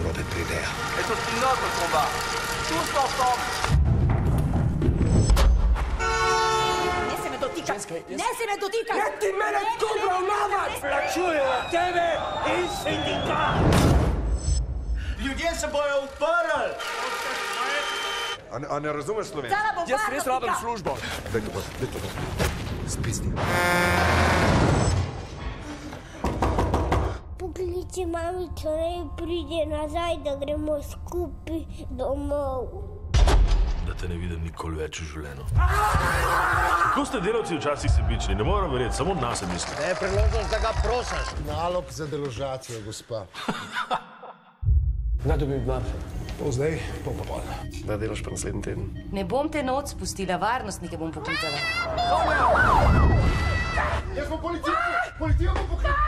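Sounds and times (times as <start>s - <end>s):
emergency siren sweeping: 51.5s - 53.6s.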